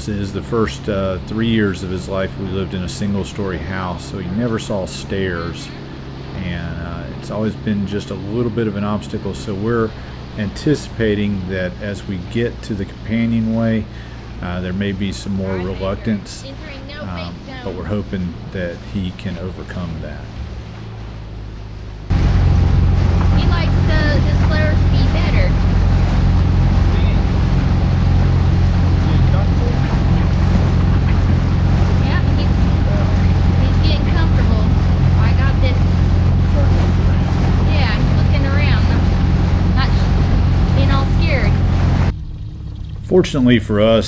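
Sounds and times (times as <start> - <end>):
outboard motor running: 0.0 - 44.0.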